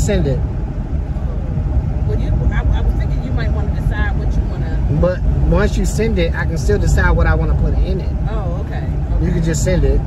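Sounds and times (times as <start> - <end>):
people talking: 0.0 - 0.4, 2.1 - 10.0
car road and engine rumble: 0.0 - 10.0.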